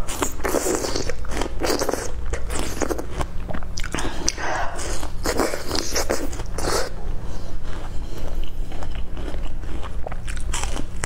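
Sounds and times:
crisp chewing crunches: 0.0 - 7.0, 7.6 - 11.0
low steady hum: 0.0 - 11.0.

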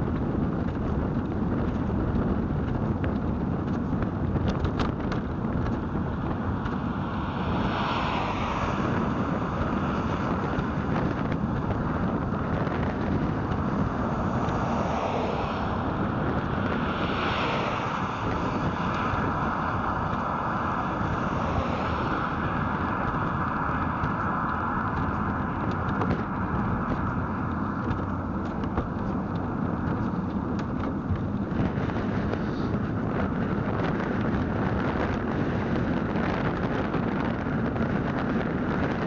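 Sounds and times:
bike road rumble: 0.0 - 39.0
wind rush on microphone: 0.0 - 39.0
vehicles passing hiss: 6.1 - 36.4.

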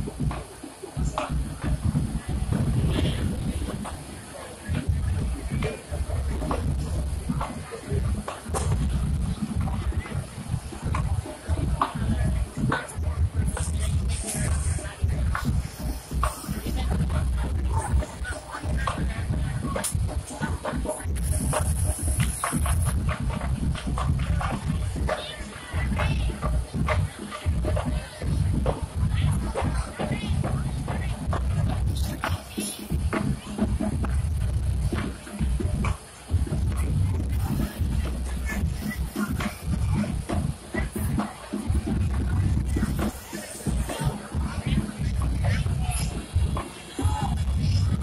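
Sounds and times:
crowd noise: 0.0 - 48.0
music playing: 0.0 - 48.0
people's voices: 0.0 - 48.0
heavy low rumble: 25.8 - 48.0.

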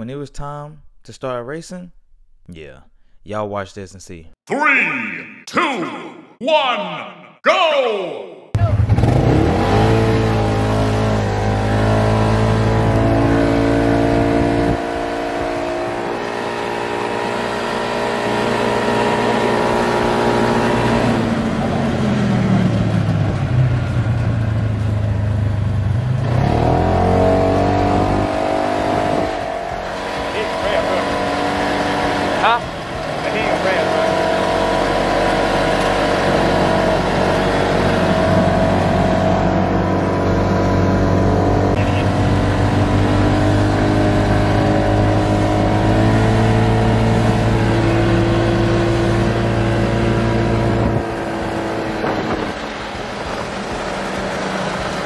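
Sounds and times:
vehicle engine revving: 8.6 - 55.0.

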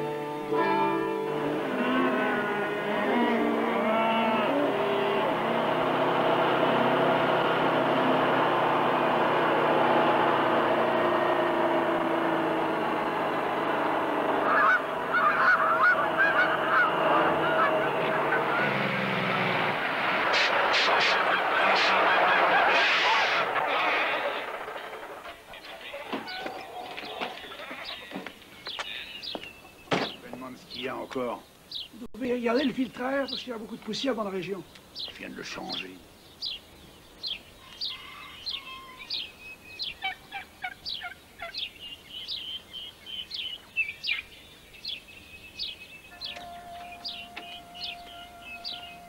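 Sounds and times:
geese honking: 0.0 - 9.2, 12.7 - 30.4, 46.0 - 49.0
diesel truck engine running: 1.3 - 29.0.

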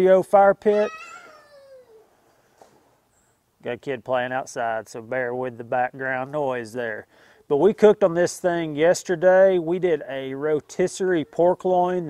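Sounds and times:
child calling out: 0.6 - 2.1.

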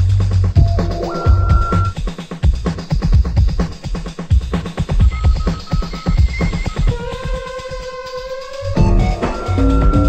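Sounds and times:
techno music with synths and bass: 0.0 - 10.0.

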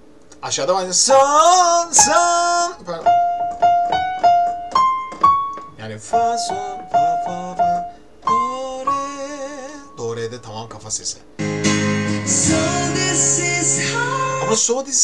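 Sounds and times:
piano repeated notes: 2.0 - 10.6, 11.4 - 14.6.

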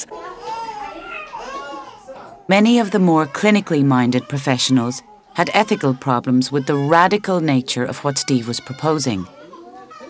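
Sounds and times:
young children's voices: 0.0 - 2.2.

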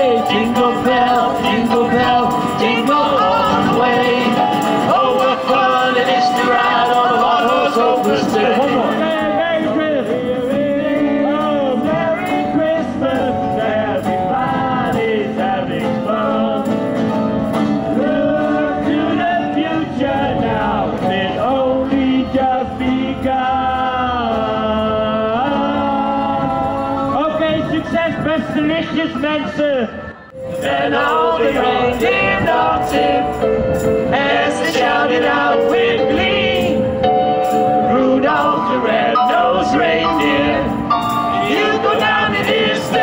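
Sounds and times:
live band playing: 0.0 - 14.8, 15.4 - 18.8, 30.1 - 43.0
voices singing: 0.0 - 27.6, 30.2 - 43.0.

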